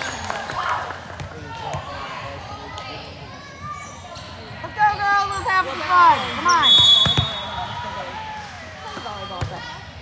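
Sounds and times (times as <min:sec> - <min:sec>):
referee's whistle: 0:06.5 - 0:07.8
volleyball bouncing on court floor: 0:06.7 - 0:07.5, 0:08.9 - 0:09.7.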